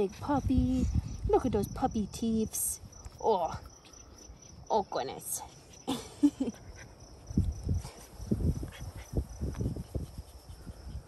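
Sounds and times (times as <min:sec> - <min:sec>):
woman laughing: 0:05.8 - 0:06.8.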